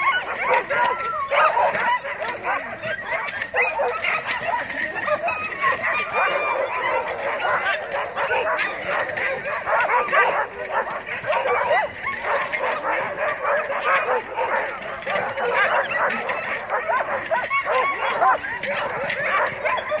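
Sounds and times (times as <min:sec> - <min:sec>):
dogs barking and yelping: 0:00.0 - 0:20.0.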